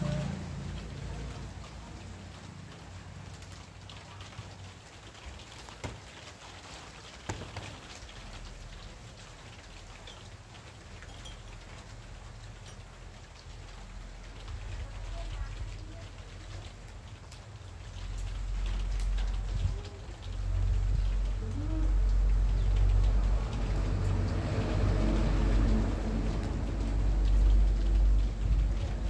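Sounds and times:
rain pattering: 0:00.0 - 0:29.0
low rumble: 0:18.0 - 0:29.0.

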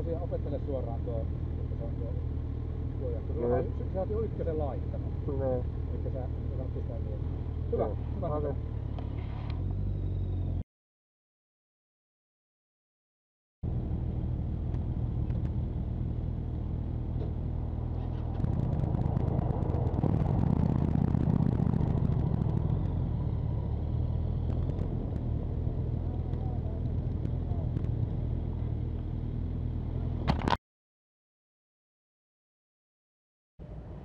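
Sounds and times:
motorcycle engine running: 0:13.7 - 0:30.5.

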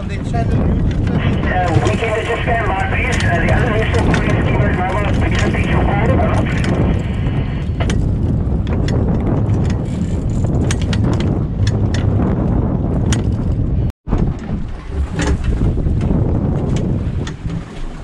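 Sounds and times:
sea and boat low rumble: 0:00.0 - 0:18.0
wind rushing over microphone: 0:00.0 - 0:18.0
indistinct voices: 0:01.2 - 0:06.7.

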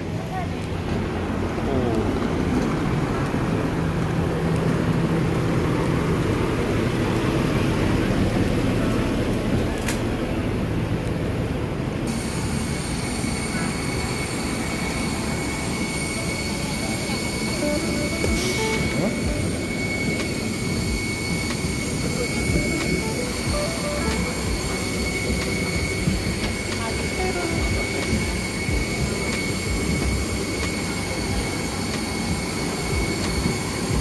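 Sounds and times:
jet airliner low rumble: 0:00.0 - 0:34.0
jet engine high whine: 0:00.0 - 0:34.0.

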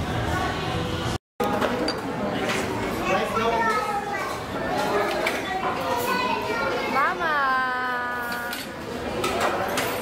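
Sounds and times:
restaurant crowd chatter: 0:00.0 - 0:10.0
children's voices: 0:02.9 - 0:07.3.

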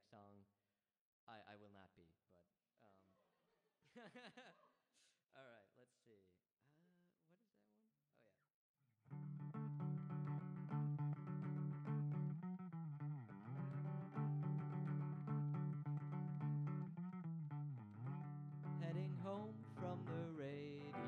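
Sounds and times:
electric guitar ringing notes: 0:09.1 - 0:21.0.

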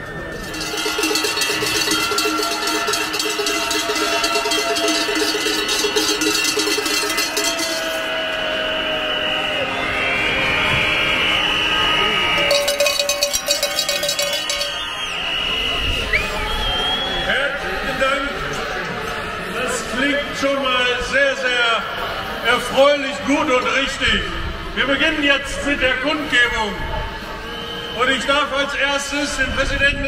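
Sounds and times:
crowd noise: 0:00.0 - 0:30.0
cowbells ringing rapidly: 0:00.2 - 0:08.2, 0:12.4 - 0:15.2
steady high tones: 0:00.3 - 0:08.2, 0:12.3 - 0:15.3.

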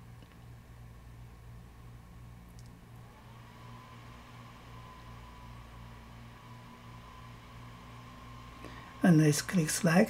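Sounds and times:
machine hum with pulsing drone: 0:00.0 - 0:10.0
thin high whine: 0:03.0 - 0:10.0.

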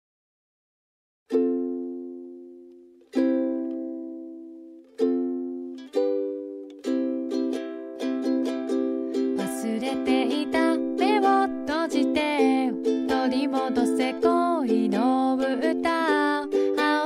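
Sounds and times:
ukulele strumming: 0:01.3 - 0:17.0
person singing: 0:06.9 - 0:17.0.

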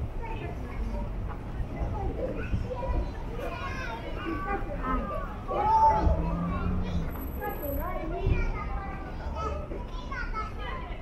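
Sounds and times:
children calling out and chattering: 0:00.0 - 0:11.0
voices of passers-by: 0:00.0 - 0:11.0.

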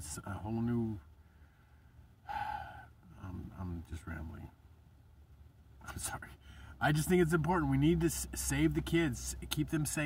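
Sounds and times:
man sighing: 0:02.2 - 0:03.0.

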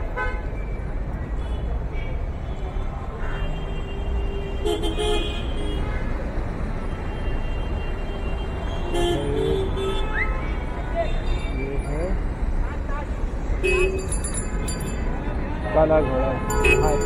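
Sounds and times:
road traffic rumble: 0:00.0 - 0:17.0
car horns tooting: 0:13.6 - 0:17.0.

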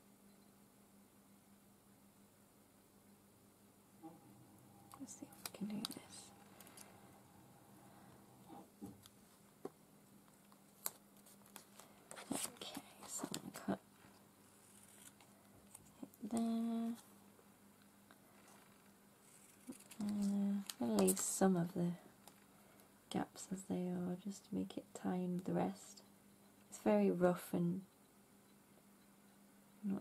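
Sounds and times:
sticker paper rustling and clicking: 0:05.0 - 0:06.9, 0:18.4 - 0:21.3
person humming: 0:20.0 - 0:20.7.

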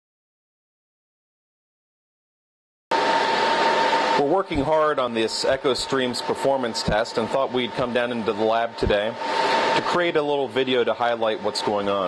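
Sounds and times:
server cooling fans whirring: 0:02.9 - 0:12.0.

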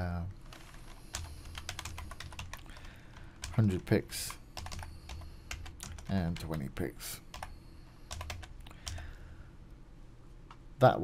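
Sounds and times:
computer keyboard typing: 0:00.5 - 0:06.6, 0:07.3 - 0:07.5, 0:08.1 - 0:09.1.

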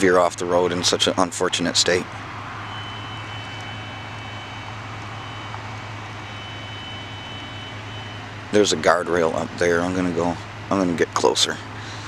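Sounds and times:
idling vehicles rumble: 0:00.0 - 0:12.0
road noise: 0:00.0 - 0:12.0
faint high-pitched tone: 0:02.5 - 0:08.8.

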